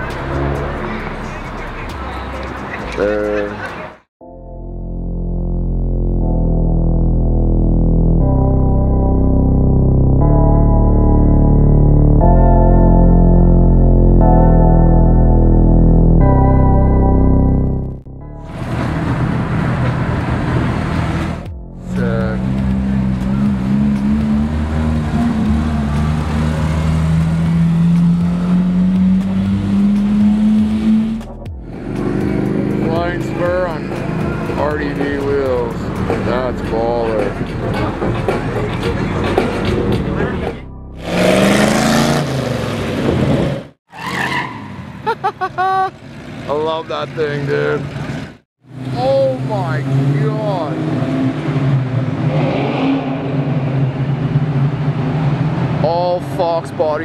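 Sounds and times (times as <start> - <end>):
engine pulling with rising note: 0.0 - 2.4, 4.8 - 43.8, 46.4 - 57.0
car engine revving: 0.0 - 3.0, 17.4 - 44.6, 46.2 - 57.0
people's voices: 0.0 - 4.0
traffic noise: 0.0 - 4.1, 18.4 - 57.0.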